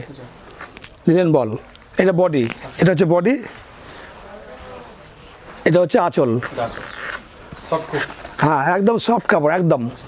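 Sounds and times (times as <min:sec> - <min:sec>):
man speaking: 0:00.0 - 0:00.4, 0:01.0 - 0:03.6, 0:05.6 - 0:06.9, 0:07.6 - 0:10.0.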